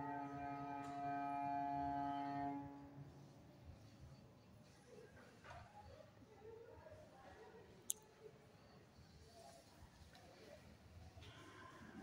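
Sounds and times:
cello bowed note: 0.0 - 2.9.

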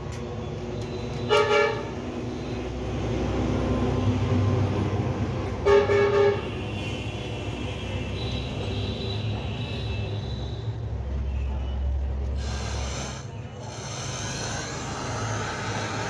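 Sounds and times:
vehicle horn honking: 1.2 - 2.0, 5.6 - 10.5.

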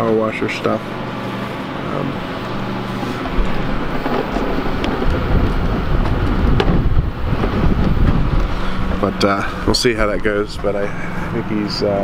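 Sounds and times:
low steady hum: 0.0 - 12.0
wind buffeting microphone: 3.3 - 11.8.

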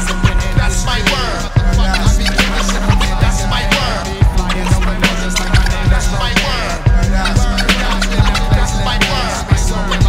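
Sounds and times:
bass line: 0.0 - 10.0
hip hop drum beat: 0.0 - 10.0
turntable scratches: 0.0 - 10.0.

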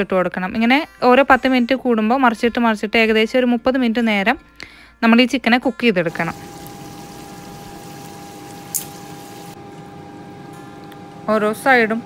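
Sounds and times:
chicken sizzling in oil: 6.1 - 9.6.

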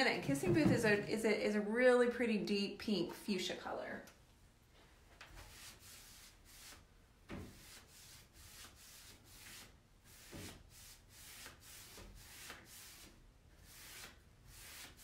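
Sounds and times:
paintbrush swishing on wood: 5.3 - 15.0.

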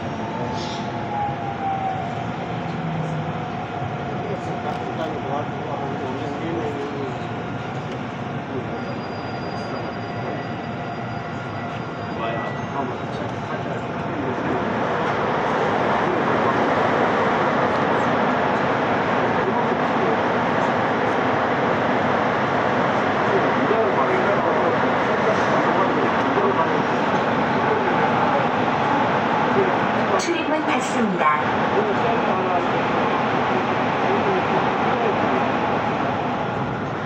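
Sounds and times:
faint whining tones of train: 0.0 - 37.0.

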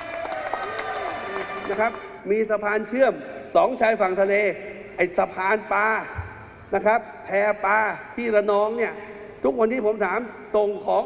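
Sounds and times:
crowd shouting and cheering: 0.0 - 2.2
people clapping: 0.0 - 2.2.

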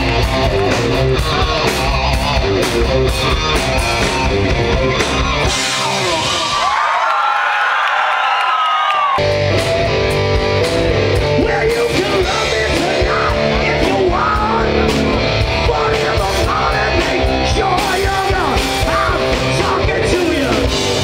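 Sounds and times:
high bending guitar notes: 0.0 - 6.6
live rock band: 0.0 - 7.4, 9.0 - 21.0
person singing: 11.2 - 21.0.

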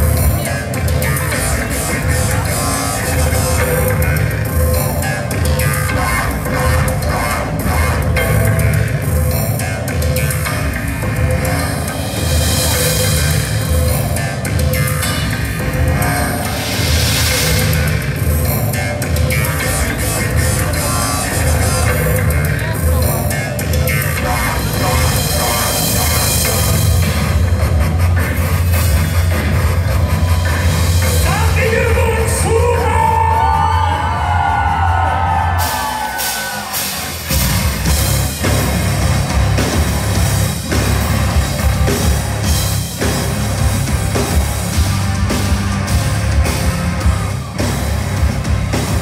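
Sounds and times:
heavy bass: 0.0 - 49.0
live band music through pa: 0.0 - 49.0.

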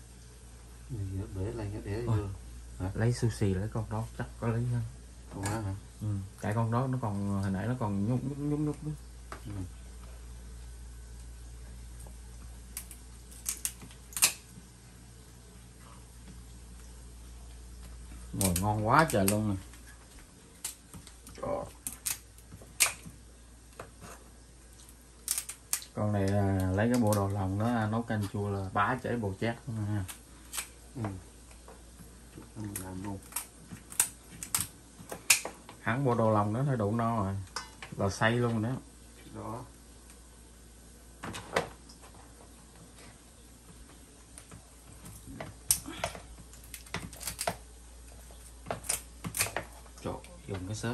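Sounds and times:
low steady hum: 0.0 - 50.9
scissors snipping through shell: 12.7 - 14.4, 21.8 - 22.2, 25.2 - 25.9.

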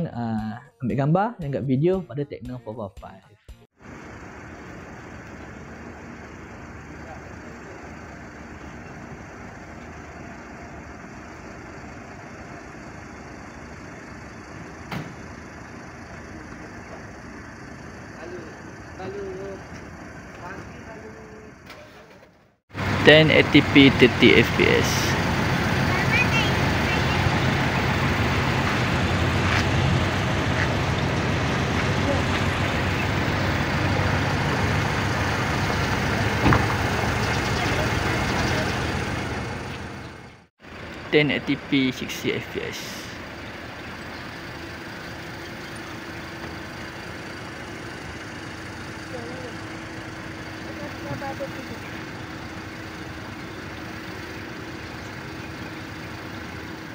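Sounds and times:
man talking: 0.0 - 3.2, 23.0 - 25.2, 41.1 - 43.2
low rumble of traffic: 3.8 - 56.9
outdoor background noise: 3.8 - 56.9.

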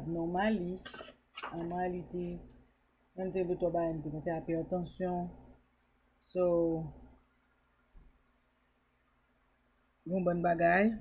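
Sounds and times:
woman talking: 0.0 - 2.5, 3.2 - 5.4, 6.2 - 7.0.

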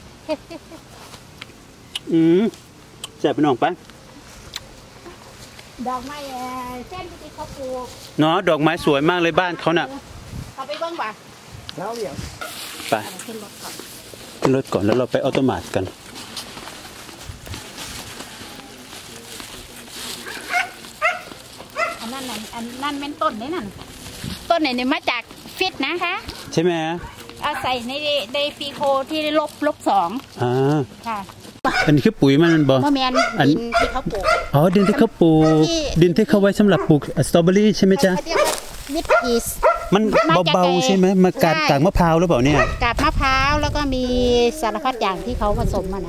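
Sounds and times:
outdoor background noise: 0.0 - 46.0
dog barking: 20.5 - 22.1, 31.7 - 35.7, 36.7 - 37.0, 38.3 - 40.5, 42.5 - 42.8.

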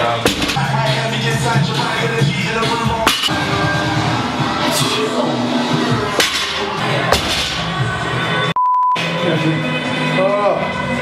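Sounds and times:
background music with a beat: 0.0 - 11.0
censor bleep: 8.6 - 9.0.

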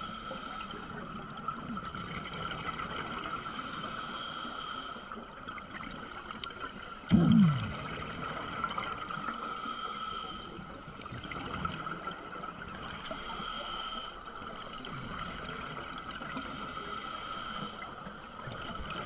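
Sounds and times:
steady regulator hiss: 0.0 - 1.2, 3.3 - 5.2, 9.2 - 10.8, 13.0 - 14.7, 16.2 - 19.0
exhaled bubbles rushing: 7.1 - 8.7.

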